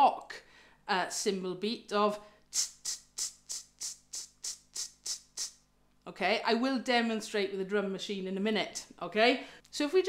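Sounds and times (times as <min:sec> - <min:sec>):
mouth imitating cymbal beat: 0:02.5 - 0:05.7.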